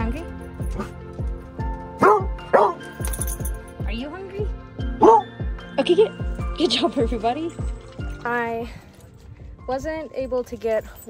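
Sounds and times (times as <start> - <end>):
background music with steady beat: 0.0 - 11.0
dog barking and yipping: 1.9 - 3.0, 5.0 - 5.4.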